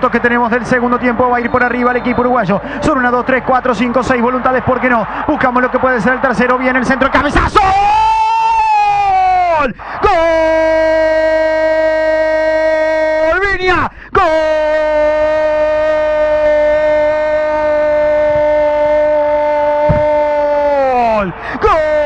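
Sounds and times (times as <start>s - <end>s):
commentator shouting: 0.0s - 22.0s.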